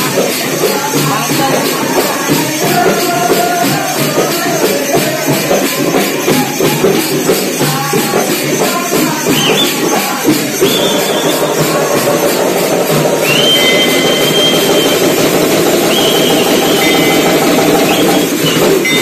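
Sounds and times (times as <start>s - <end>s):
frame drums rolling: 0.0s - 19.0s
high piercing sliding tone: 8.6s - 19.0s.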